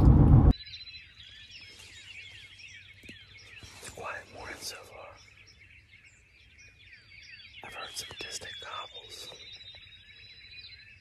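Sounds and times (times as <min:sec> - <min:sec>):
small birds chirping: 0:00.5 - 0:11.0.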